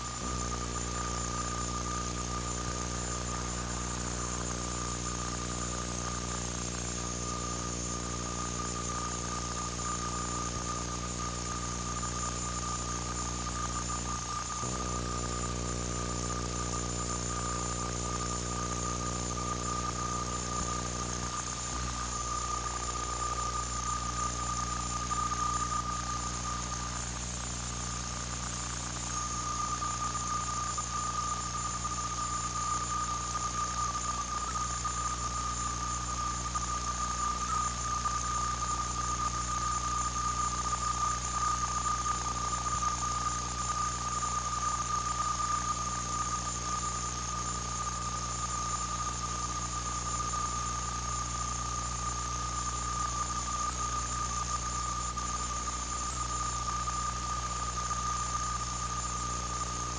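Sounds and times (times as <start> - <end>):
high-pitched electrical whine: 0.0 - 59.9.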